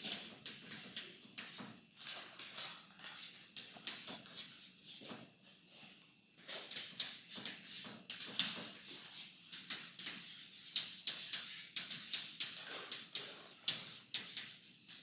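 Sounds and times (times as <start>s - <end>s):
chalk tapping and scratching: 0.0s - 5.8s, 6.4s - 15.0s.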